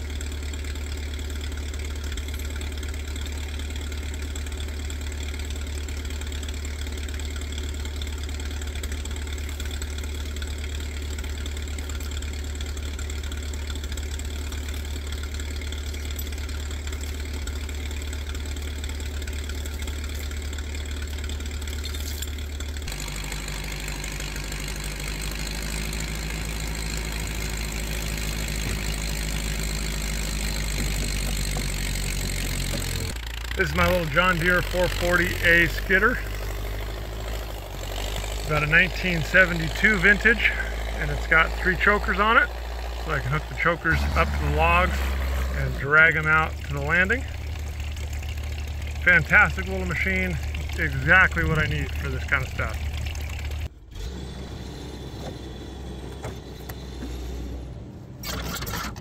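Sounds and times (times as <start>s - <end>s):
diesel engine idling: 0.0s - 58.9s.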